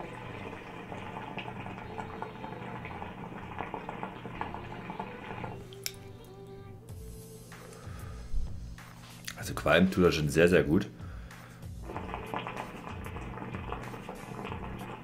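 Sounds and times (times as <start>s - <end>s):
hookah water bubbling: 0.0s - 6.6s, 11.6s - 15.0s
breathy exhale: 7.6s - 8.5s, 11.0s - 11.7s.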